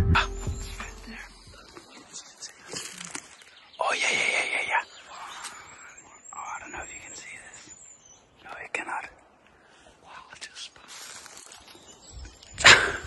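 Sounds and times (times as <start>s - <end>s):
people whispering: 0.0s - 11.3s
rustling in forest: 0.8s - 13.0s.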